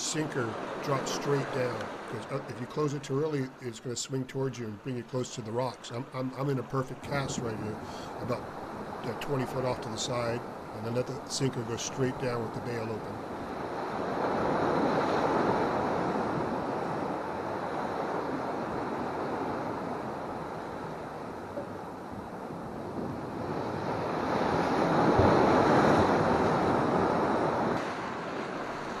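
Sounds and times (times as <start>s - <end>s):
surf breaking against rocks: 0.0s - 3.4s, 5.1s - 29.0s
wind buffeting microphone: 13.1s - 29.0s.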